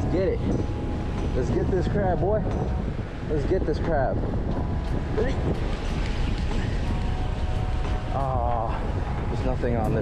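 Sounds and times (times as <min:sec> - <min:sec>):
surf washing on rocks: 0:00.0 - 0:10.0
wind buffeting microphone: 0:00.0 - 0:10.0.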